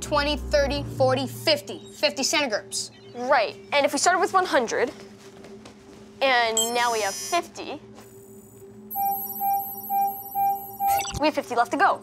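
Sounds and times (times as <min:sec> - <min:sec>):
short electronic beeps: 0:08.9 - 0:11.2.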